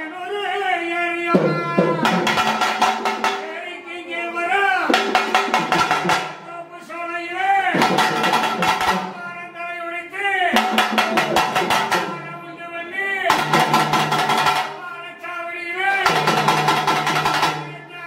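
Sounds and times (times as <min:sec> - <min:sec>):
rapid drumming: 0:01.4 - 0:03.6, 0:04.9 - 0:06.5, 0:07.7 - 0:09.4, 0:10.5 - 0:12.5, 0:13.3 - 0:14.9, 0:16.0 - 0:18.0.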